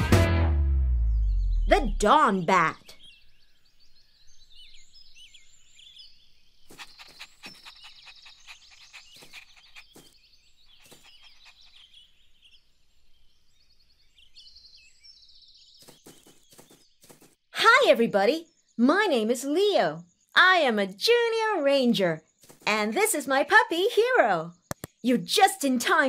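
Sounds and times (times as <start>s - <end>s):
small birds chirping: 1.1s - 26.0s.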